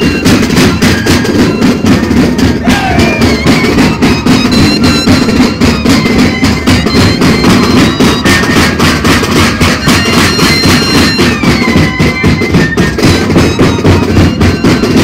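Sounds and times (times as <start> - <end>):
cane flutes playing melody: 0.0 - 15.0
rapid drumbeat: 0.0 - 15.0.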